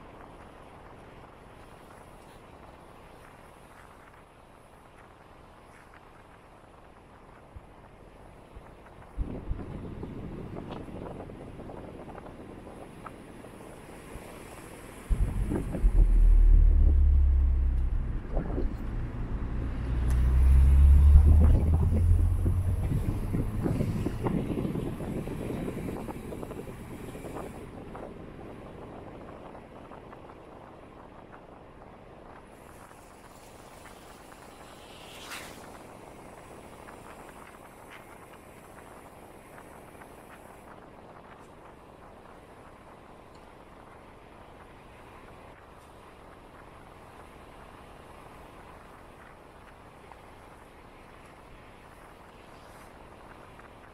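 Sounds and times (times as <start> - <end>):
wind buffeting microphone: 0.0 - 53.9
car driving noise: 13.7 - 27.6.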